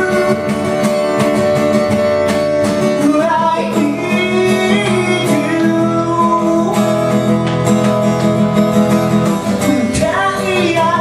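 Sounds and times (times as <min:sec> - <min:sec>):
man singing: 0:00.0 - 0:00.9, 0:02.8 - 0:07.4, 0:09.1 - 0:11.0
acoustic guitar chords: 0:00.0 - 0:11.0.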